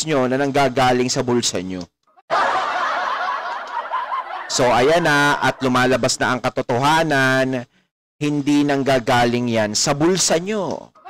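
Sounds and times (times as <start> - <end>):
laughter: 2.3 - 6.0.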